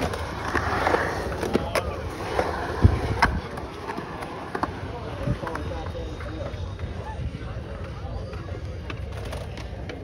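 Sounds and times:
skateboard clicks: 0:00.0 - 0:07.0, 0:07.6 - 0:10.0
skateboard wheels rolling on concrete: 0:00.0 - 0:10.0.

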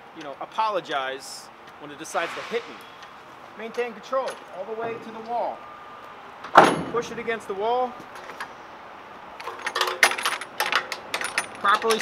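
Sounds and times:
metal latch clinking and rattling: 0:09.4 - 0:12.0.

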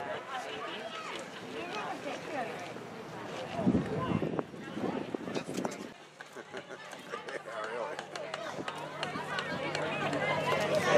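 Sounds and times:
crowd talking: 0:00.0 - 0:10.9.

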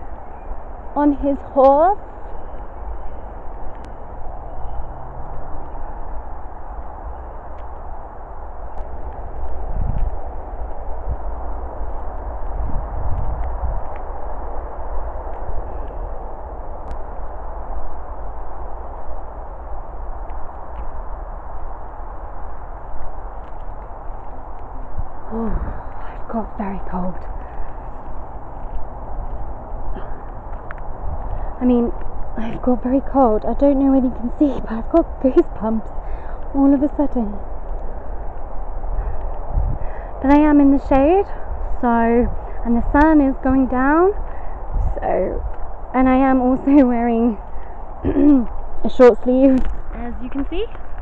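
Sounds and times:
rushing wind noise: 0:00.0 - 0:51.0.

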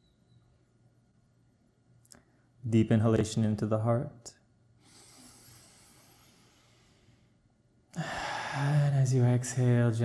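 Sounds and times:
slow deep inhalation: 0:04.8 - 0:07.4.

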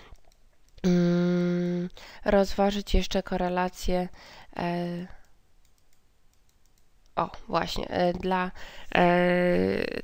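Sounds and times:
computer mouse clicks: 0:00.1 - 0:00.9, 0:05.0 - 0:07.2.

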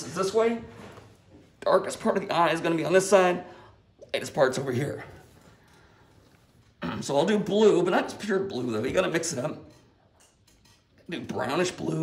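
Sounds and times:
man speaking: 0:00.0 - 0:00.7, 0:01.6 - 0:05.3, 0:06.8 - 0:09.7, 0:11.1 - 0:12.0.

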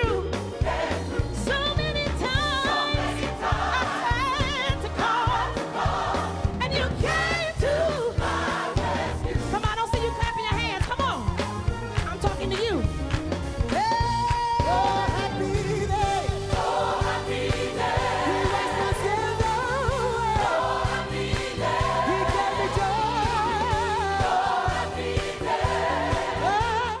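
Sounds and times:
drums: 0:00.0 - 0:27.0
gospel choir singing: 0:00.1 - 0:09.9, 0:14.5 - 0:27.0.

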